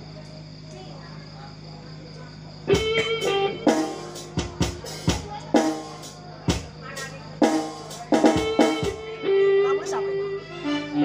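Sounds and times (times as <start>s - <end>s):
electric guitar chords: 2.7s - 11.0s
sustained keyboard chords: 2.7s - 11.0s
sharp booming drum strokes: 7.4s - 9.0s.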